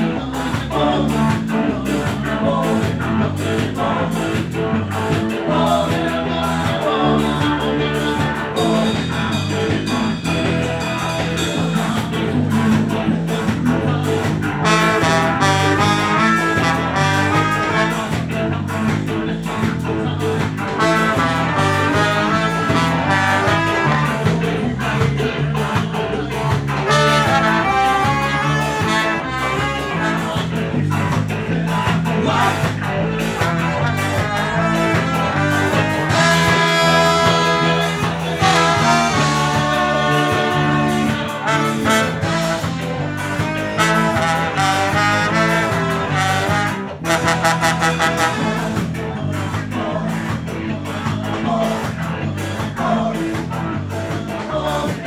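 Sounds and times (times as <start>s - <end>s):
ska band playing: 0.0s - 55.0s
horn melody: 14.5s - 18.8s, 20.7s - 24.5s, 26.8s - 30.7s, 33.2s - 49.1s.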